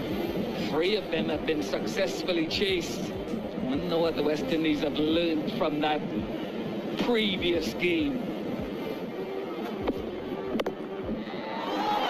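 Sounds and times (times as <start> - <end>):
stadium crowd cheering: 11.1 - 12.0.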